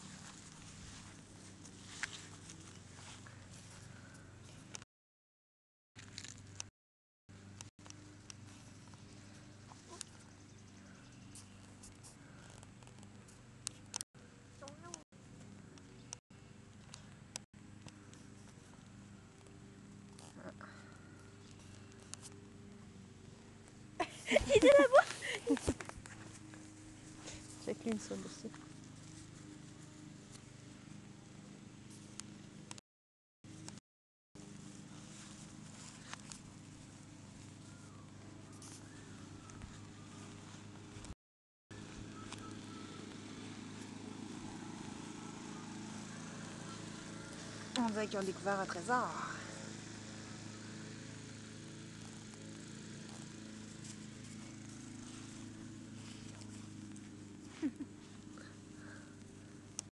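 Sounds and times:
woman's voice: 24.2 - 25.5, 27.6 - 28.6, 47.8 - 49.5
low machine hum: 34.4 - 41.1, 41.7 - 59.9
quiet background hum: 34.4 - 41.1.

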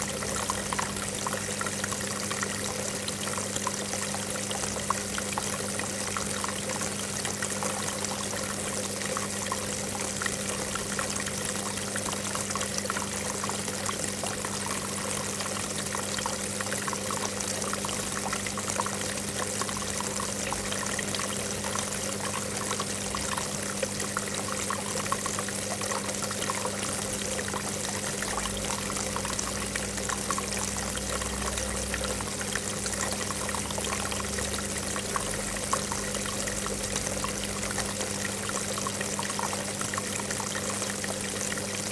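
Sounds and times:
fountain water pouring and trickling: 0.0 - 41.9.

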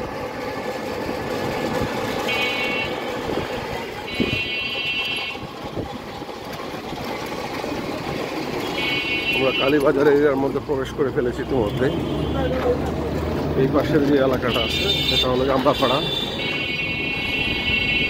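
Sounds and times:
street traffic noise: 0.0 - 18.0
buzzing electric horn: 2.1 - 5.5, 8.6 - 9.8, 14.4 - 18.0.

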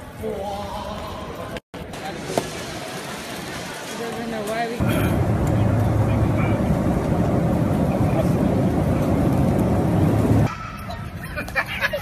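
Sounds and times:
moving vehicle rumble: 2.0 - 11.9.

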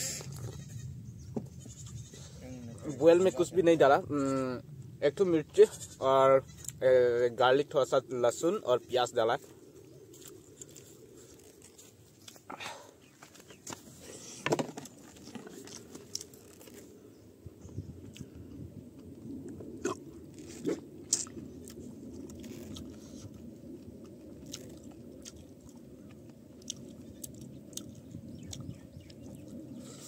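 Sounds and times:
man chewing with wet mouth sounds: 10.0 - 13.2, 15.0 - 16.9, 18.0 - 30.0
small clicks and crunches: 10.1 - 12.5, 14.6 - 16.9, 20.3 - 25.8.

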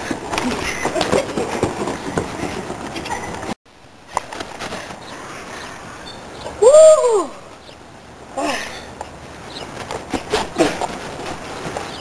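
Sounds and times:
person crying out: 6.6 - 7.4.

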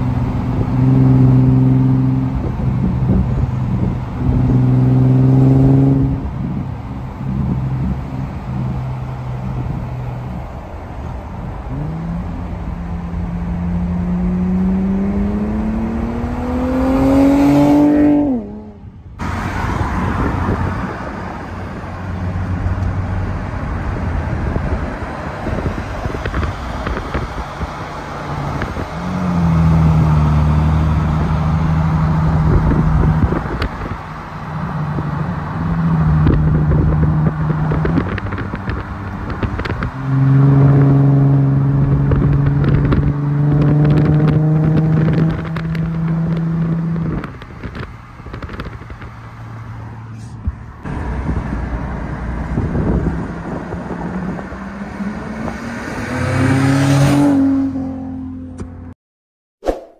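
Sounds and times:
car exhaust under acceleration: 0.0 - 58.9
road and wind rush: 0.0 - 59.0, 59.6 - 59.9.

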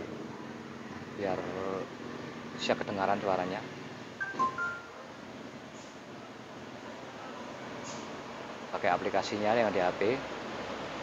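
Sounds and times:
electronic beeps: 4.2 - 5.0.

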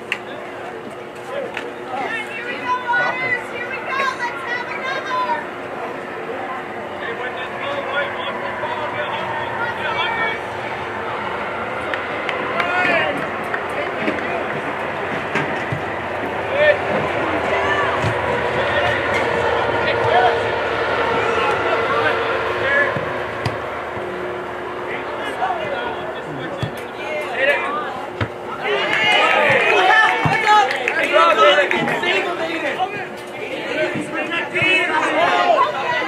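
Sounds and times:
crowd shouting outdoors: 1.7 - 36.0.

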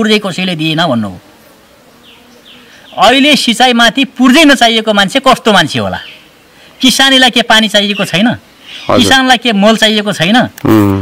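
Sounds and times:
flying insect buzzing: 0.0 - 3.5.

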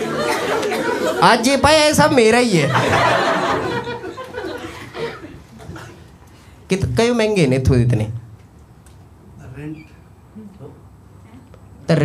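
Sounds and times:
man speaking into a microphone: 1.2 - 2.9, 6.7 - 8.3.

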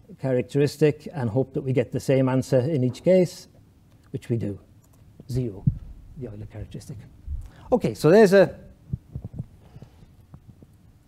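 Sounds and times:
faint low hum: 0.0 - 11.0
small clicks: 4.8 - 5.1
soft low thumps: 5.5 - 6.2, 7.2 - 7.6, 8.8 - 9.6.

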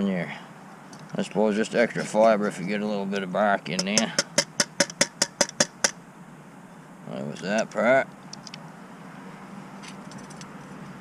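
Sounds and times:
tinny can tapping on cook pot: 3.8 - 6.0.

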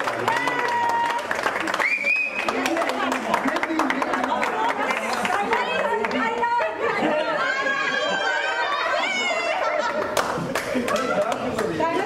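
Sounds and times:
group of people talking and cheering: 0.0 - 12.0.

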